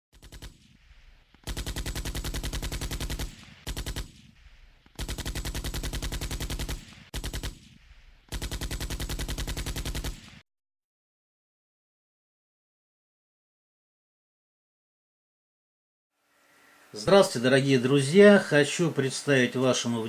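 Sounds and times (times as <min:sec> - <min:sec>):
automatic gunfire: 0:00.1 - 0:10.4.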